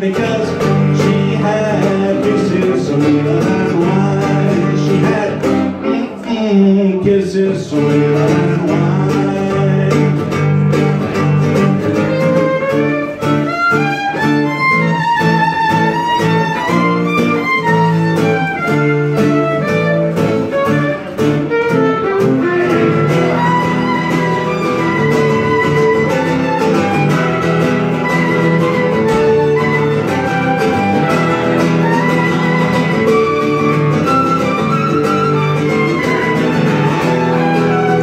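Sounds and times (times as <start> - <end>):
fiddle melody: 0.0 - 6.2, 7.6 - 38.0
strummed acoustic guitar: 0.0 - 38.0.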